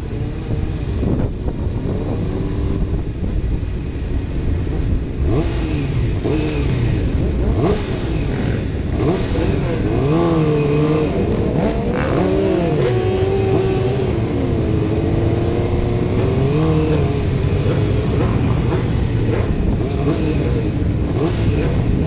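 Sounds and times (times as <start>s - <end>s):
motorcycle engines revving: 0.0s - 22.0s
rider's motorcycle engine: 0.0s - 22.0s
wind rumble on camera: 0.0s - 22.0s.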